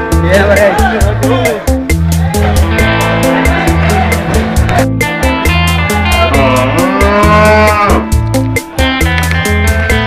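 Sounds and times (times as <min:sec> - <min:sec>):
music with steady beat: 0:00.0 - 0:10.0
elephant trumpeting: 0:05.8 - 0:08.2.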